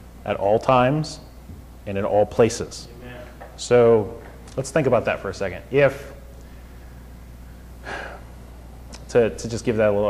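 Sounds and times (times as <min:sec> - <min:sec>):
steady low hum: 0:00.0 - 0:10.0
man speaking: 0:01.9 - 0:06.3, 0:09.0 - 0:10.0
man inhaling sharply: 0:06.4 - 0:08.3.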